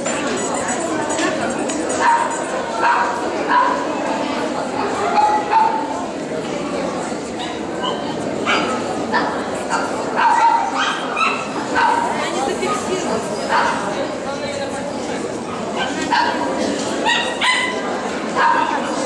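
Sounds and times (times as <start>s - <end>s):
murmur of voices: 0.0s - 19.0s
dogs yapping: 1.9s - 3.8s, 17.0s - 17.8s.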